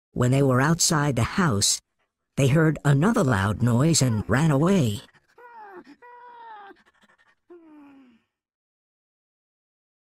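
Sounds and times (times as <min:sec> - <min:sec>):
person narrating: 0:00.1 - 0:06.8
voice-like wailing moans: 0:04.0 - 0:08.3.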